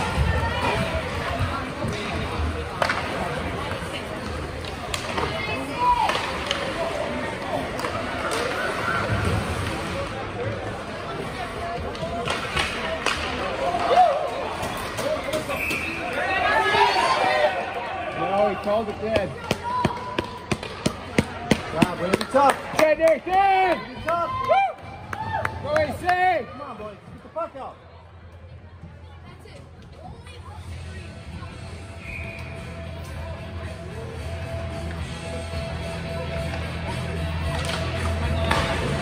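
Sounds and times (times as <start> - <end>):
hockey sticks and puck clacking: 0.0 - 9.9, 11.8 - 16.3, 18.2 - 24.2, 34.7 - 39.0.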